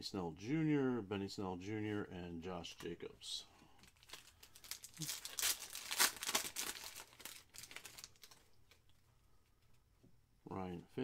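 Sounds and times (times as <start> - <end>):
foil wrapper crinkling: 3.8 - 8.8.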